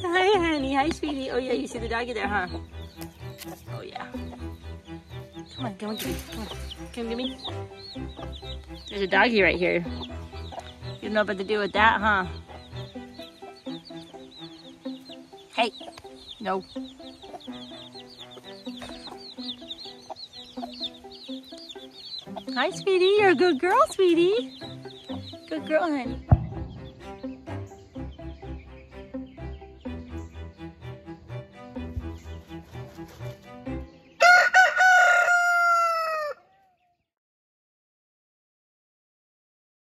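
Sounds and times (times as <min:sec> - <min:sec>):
chickens clucking: 0:00.0 - 0:36.9
rooster crowing: 0:34.2 - 0:36.6
loud chicken calls: 0:34.2 - 0:36.8.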